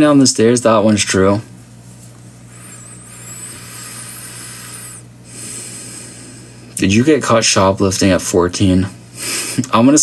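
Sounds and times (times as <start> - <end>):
low steady hum: 0.0 - 10.0
person breathing out slowly: 2.5 - 6.4.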